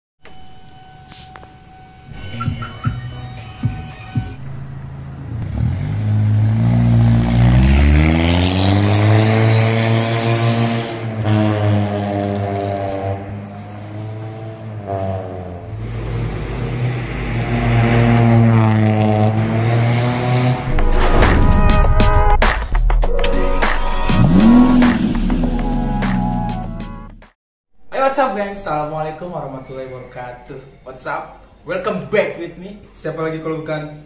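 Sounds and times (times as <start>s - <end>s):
car engine revving: 4.2s - 27.3s.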